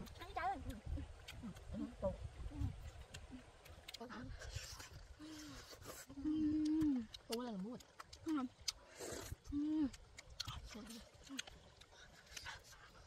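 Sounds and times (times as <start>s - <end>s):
wet chewing and mouth smacks: 0.0s - 13.0s
woman humming mmm: 5.2s - 7.2s, 8.2s - 10.0s.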